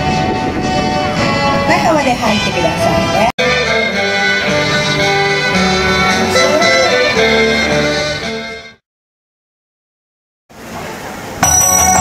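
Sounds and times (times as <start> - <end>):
band music: 0.0 - 8.8
high ringing bell-like tones: 11.4 - 12.0.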